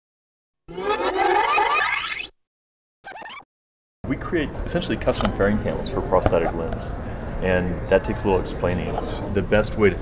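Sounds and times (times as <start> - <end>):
warbling tones gliding upward: 0.7 - 2.3.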